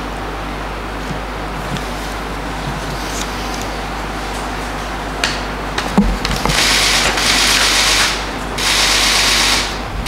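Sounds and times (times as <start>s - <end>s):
paper rustling: 1.0s - 4.5s.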